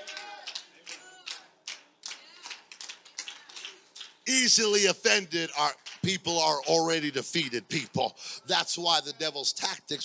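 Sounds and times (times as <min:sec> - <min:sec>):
people clapping: 0:00.0 - 0:06.7.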